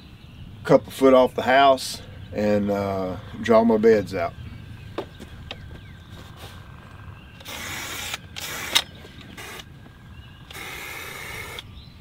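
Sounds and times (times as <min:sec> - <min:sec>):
sharp click: 0:07.4 - 0:09.7
spray paint hissing: 0:07.4 - 0:09.7, 0:10.5 - 0:11.6.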